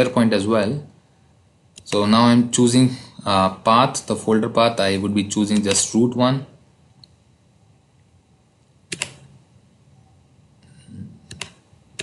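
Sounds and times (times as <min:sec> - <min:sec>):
computer mouse clicks: 0:08.9 - 0:09.3, 0:11.3 - 0:12.0.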